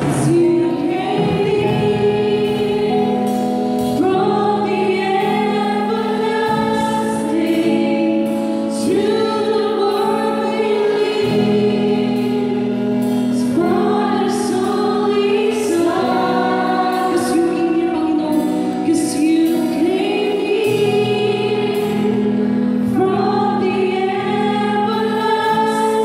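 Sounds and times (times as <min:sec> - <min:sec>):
drum kit with cymbals: 0:00.0 - 0:23.6
electric guitar: 0:00.0 - 0:26.0
women singing together: 0:00.0 - 0:26.0.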